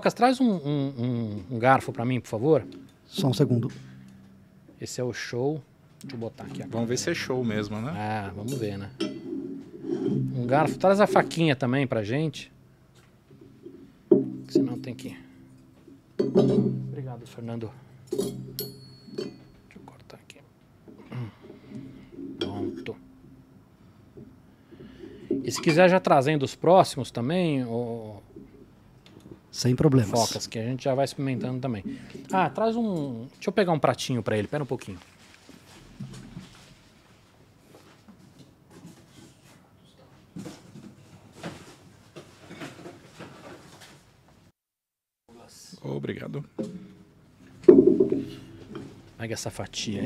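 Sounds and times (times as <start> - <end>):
metallic ring: 2.5 - 4.8, 6.6 - 11.5, 13.6 - 17.4, 18.0 - 19.8, 21.8 - 23.6
faint knocks and handling noises: 12.9 - 17.4, 18.0 - 25.8, 34.4 - 44.4, 46.6 - 50.0.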